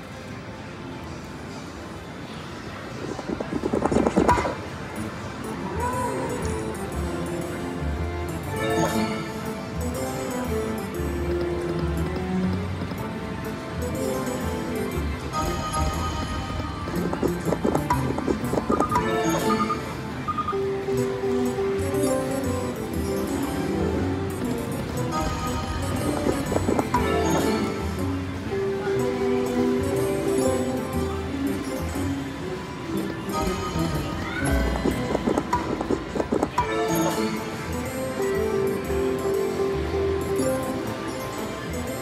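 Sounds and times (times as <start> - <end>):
slot machine electronic music: 3.6 - 42.0
slot machine bonus music: 13.7 - 28.5.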